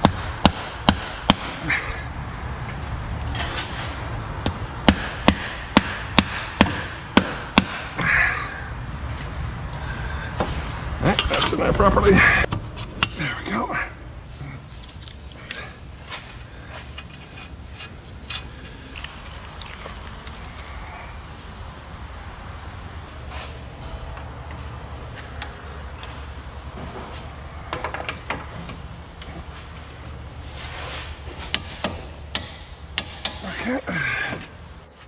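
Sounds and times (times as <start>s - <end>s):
steady low hum: 0.0s - 35.0s.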